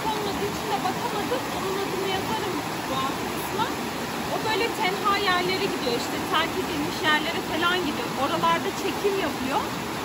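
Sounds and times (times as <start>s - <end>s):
flowing water rushing: 0.0s - 10.0s.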